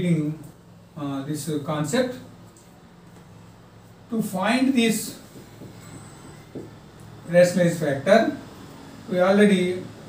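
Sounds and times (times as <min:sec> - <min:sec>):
marker writing on whiteboard: 0:05.1 - 0:06.8
thin high marker squeak: 0:05.8 - 0:06.5.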